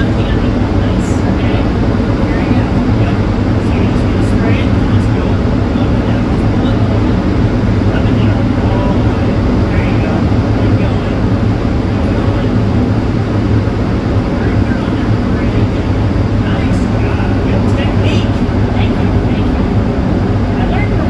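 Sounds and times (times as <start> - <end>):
powder spray gun rushing roar: 0.0 - 21.0.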